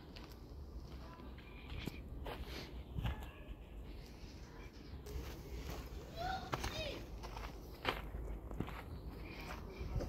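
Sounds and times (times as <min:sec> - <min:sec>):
footsteps on dirt: 0:00.0 - 0:10.0
faint distant voices: 0:00.7 - 0:10.0.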